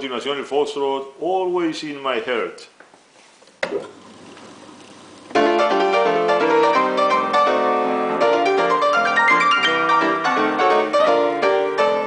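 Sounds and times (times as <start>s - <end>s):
player piano playing foxtrot: 5.3s - 12.0s.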